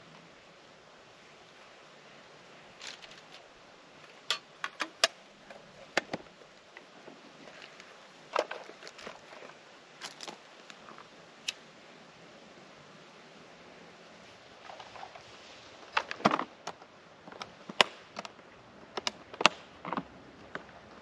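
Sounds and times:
sharp clicks and snaps: 11.4 - 11.6, 19.0 - 20.7.

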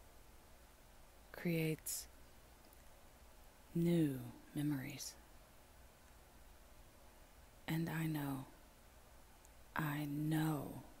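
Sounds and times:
person reciting a poem: 1.3 - 2.1, 3.7 - 5.2, 7.6 - 8.6, 9.7 - 11.0.

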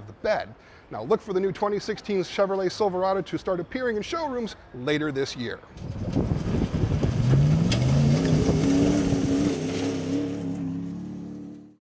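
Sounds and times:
pickup truck engine accelerating: 5.8 - 11.7.

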